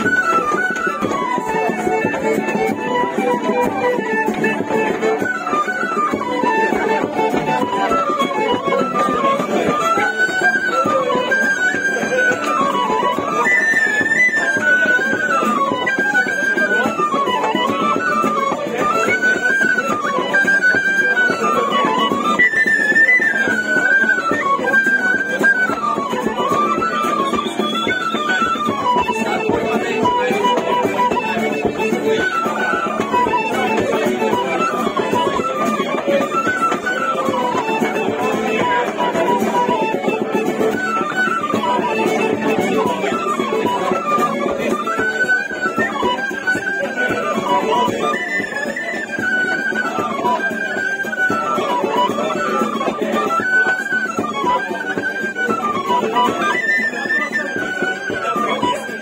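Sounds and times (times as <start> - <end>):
fiddle playing fast dance tune: 0.0 - 59.0
guitar accompaniment: 0.0 - 59.0.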